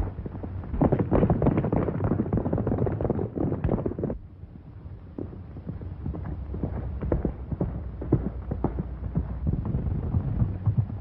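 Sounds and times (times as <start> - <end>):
low rumble: 0.0 - 11.0
horse hooves galloping: 5.0 - 11.0.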